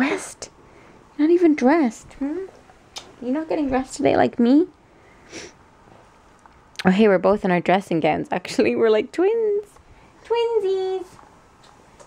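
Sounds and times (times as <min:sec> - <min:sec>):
sniff through the nose: 0:05.2 - 0:05.6.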